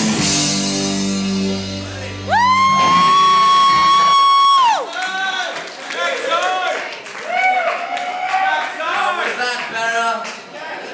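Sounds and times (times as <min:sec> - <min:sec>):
band chord: 0:00.0 - 0:03.1
person cheering woo: 0:02.3 - 0:04.9.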